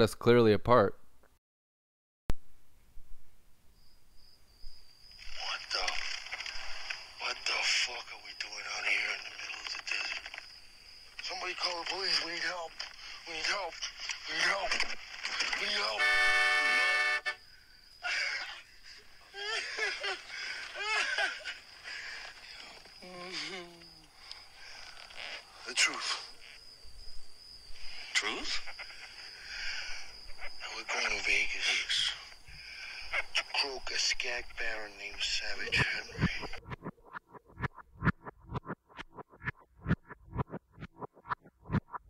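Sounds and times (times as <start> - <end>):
voices speaking: 5.2 - 10.5, 11.1 - 17.4, 18.0 - 26.6, 27.9 - 36.9
loud horn-like tone: 15.8 - 17.5.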